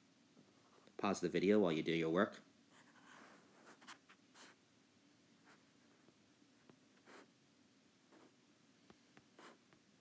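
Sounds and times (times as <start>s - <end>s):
stylus scratching and tapping on tablet: 2.7s - 4.6s, 8.1s - 8.4s, 9.2s - 9.8s.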